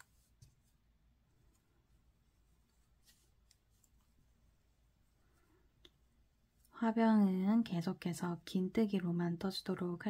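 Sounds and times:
crochet hook and yarn handling: 0.0s - 6.8s
woman speaking: 6.7s - 10.0s.

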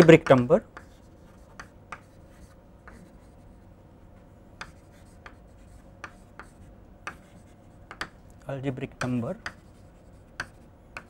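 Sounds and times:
chalk tapping and scratching: 0.0s - 3.7s, 4.6s - 8.2s, 9.0s - 11.0s.

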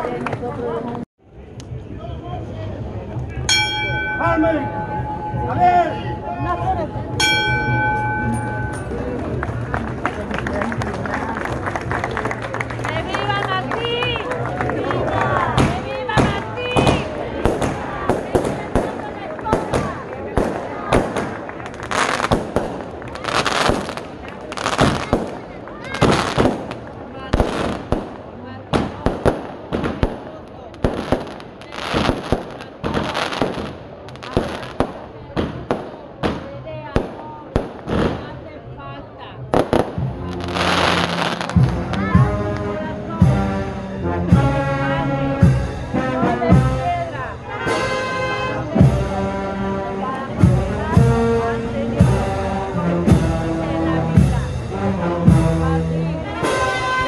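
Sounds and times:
crowd voices: 0.0s - 57.0s
fireworks bangs and cracks: 15.4s - 38.6s, 39.4s - 42.8s.

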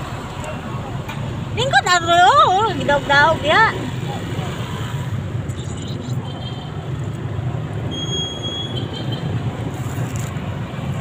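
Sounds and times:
street traffic rumble: 0.0s - 11.0s.

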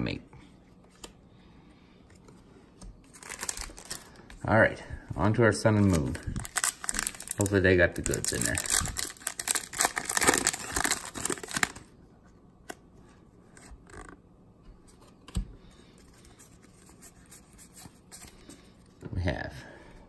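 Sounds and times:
trading cards rustling: 2.2s - 4.4s, 5.6s - 11.9s
foil wrapper crinkling and tearing: 3.1s - 4.1s, 5.8s - 11.9s.

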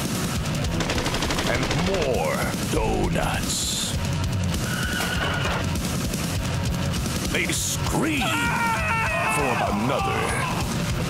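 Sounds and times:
rapid automatic gunfire: 0.0s - 8.6s.

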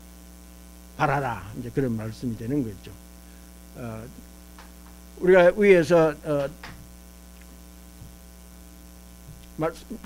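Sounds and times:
electrical mains hum: 0.0s - 10.0s
man speaking: 1.0s - 3.0s, 3.8s - 4.2s, 5.2s - 6.6s, 9.6s - 10.0s.

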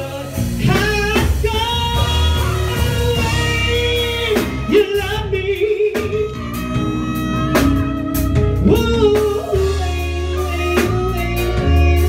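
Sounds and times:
band accompaniment: 0.0s - 12.0s.

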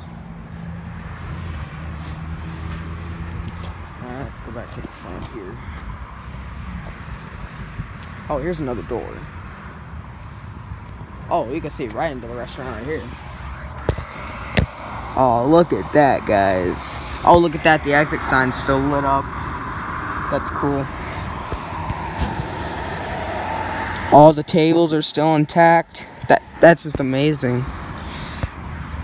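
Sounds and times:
footfalls on grass: 0.0s - 7.1s
low outdoor rumble: 0.0s - 29.0s.

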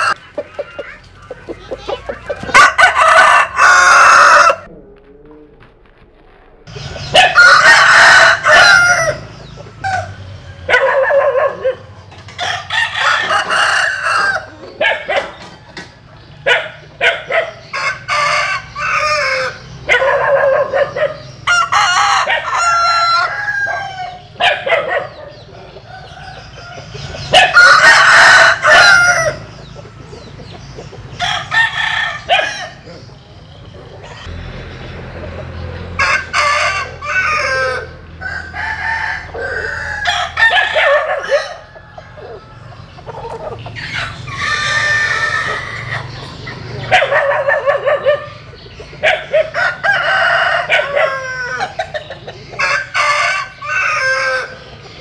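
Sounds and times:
rooster clucks: 0.0s - 5.7s, 6.7s - 55.0s
roosters crowing: 0.0s - 55.0s.

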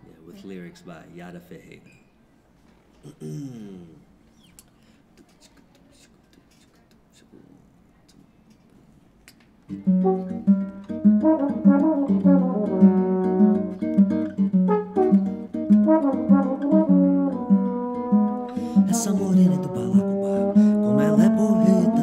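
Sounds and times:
classical guitar picking: 9.7s - 22.0s
trombone: 10.0s - 13.9s, 14.6s - 22.0s.

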